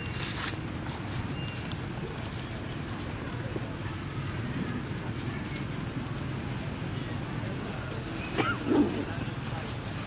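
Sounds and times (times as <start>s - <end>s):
steady low background noise: 0.0s - 10.0s.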